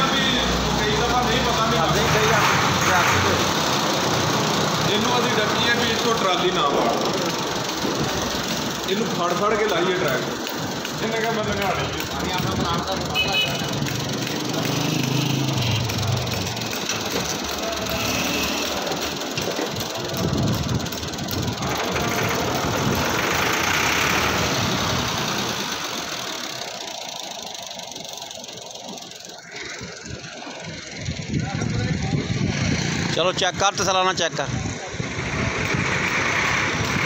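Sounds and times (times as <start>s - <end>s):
tractor diesel engine running: 0.0s - 37.0s.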